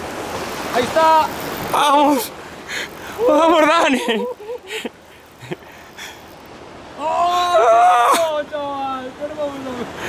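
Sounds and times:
sea noise on shore: 0:00.0 - 0:10.0
wind: 0:00.0 - 0:10.0.

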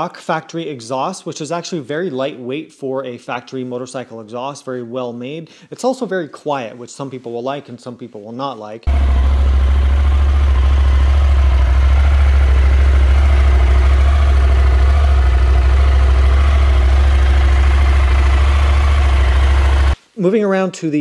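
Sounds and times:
motorcycle engine idling: 0:08.9 - 0:20.0.

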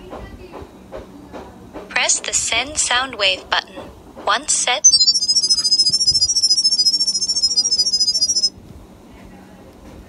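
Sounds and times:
high-pitched electronic beeps: 0:04.8 - 0:08.5.

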